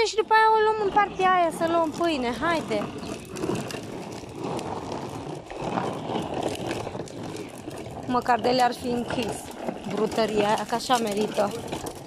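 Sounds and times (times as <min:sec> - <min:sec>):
plastic wheels rolling over asphalt: 0:00.0 - 0:12.0.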